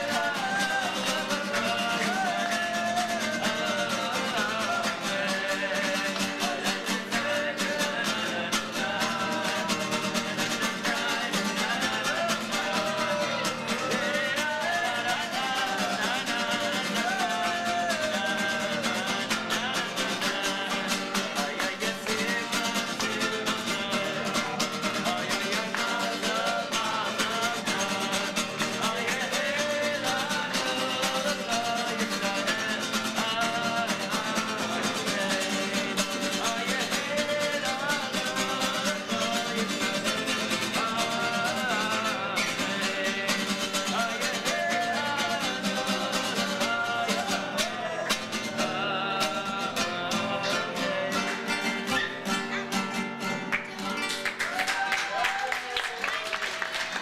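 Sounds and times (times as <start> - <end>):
acoustic guitar strumming: 0.0 - 54.5.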